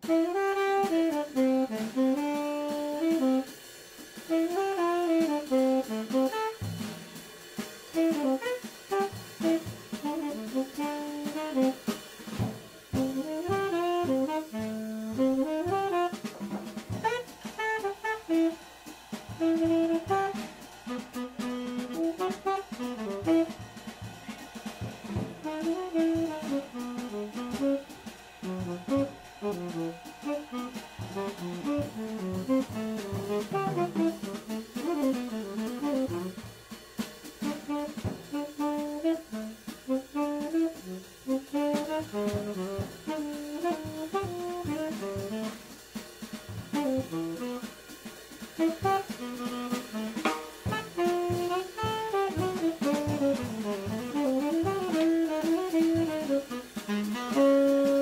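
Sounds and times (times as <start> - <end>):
drum kit: 0.0 - 58.0
tenor saxophone: 0.0 - 58.0.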